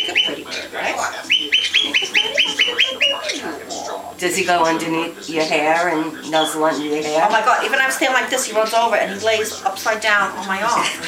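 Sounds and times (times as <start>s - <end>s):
parrot squawking: 0.0s - 11.0s.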